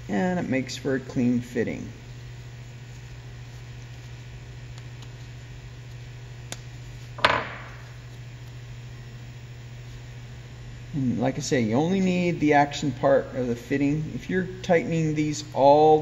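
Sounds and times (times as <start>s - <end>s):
low electrical hum: 0.0s - 16.0s
knock on wooden workbench: 7.2s - 7.8s.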